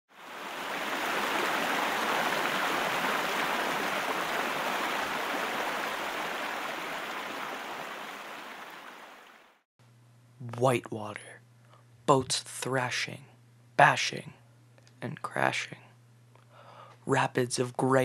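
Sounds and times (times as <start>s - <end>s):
river rapids rushing: 0.2s - 9.4s.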